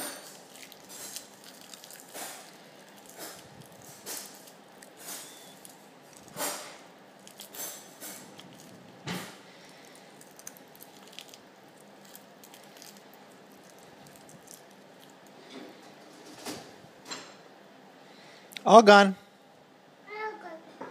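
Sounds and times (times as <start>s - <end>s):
toddler chewing: 0.0s - 15.4s.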